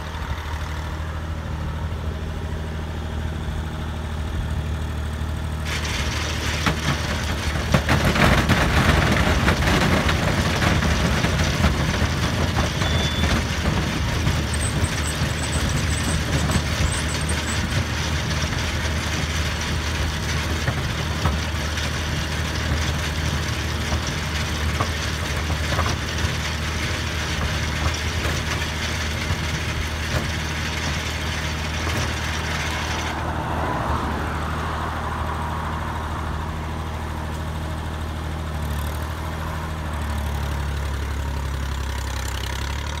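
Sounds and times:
tractor engine running: 0:00.0 - 0:43.0
harvester machinery clattering: 0:05.6 - 0:33.2.

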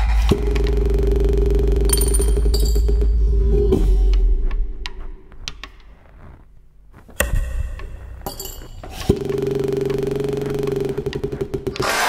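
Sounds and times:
low pulsing buzzing tone: 0:00.0 - 0:05.5, 0:07.2 - 0:11.8.

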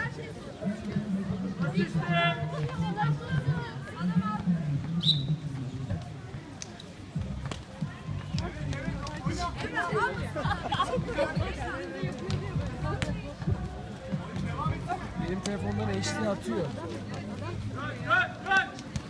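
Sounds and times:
voices of players and spectators: 0:00.0 - 0:19.0.

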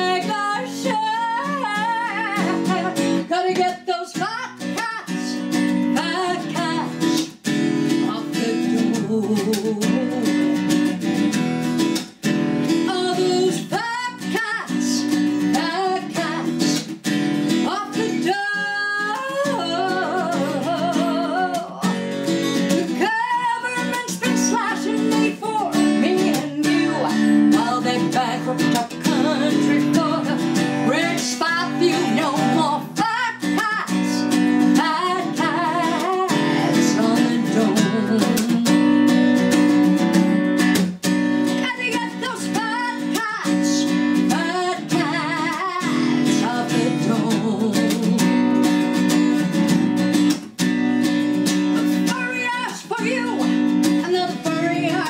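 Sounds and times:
woman singing: 0:00.0 - 0:11.3, 0:12.6 - 0:49.8, 0:51.6 - 0:55.0
acoustic guitar strumming: 0:00.0 - 0:55.0.

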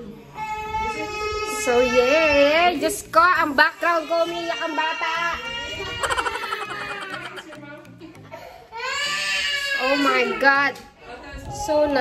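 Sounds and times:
small child crying: 0:00.4 - 0:02.5, 0:04.0 - 0:07.4, 0:08.7 - 0:10.6
background music: 0:00.4 - 0:12.0.

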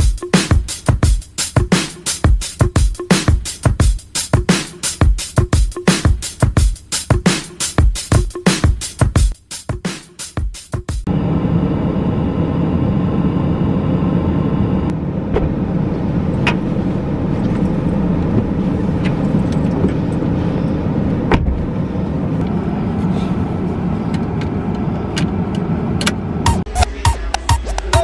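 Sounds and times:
car engine idling: 0:11.1 - 0:26.7.

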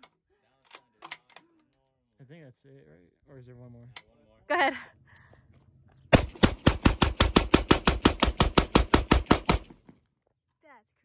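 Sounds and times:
rifle firing rapid shots: 0:06.1 - 0:09.8.

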